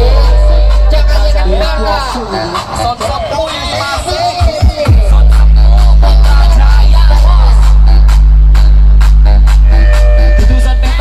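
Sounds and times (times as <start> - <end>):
deep bass note: 0.0 - 2.0, 4.9 - 11.0
loud electronic dance music: 0.0 - 11.0
percussive beat: 4.2 - 11.0.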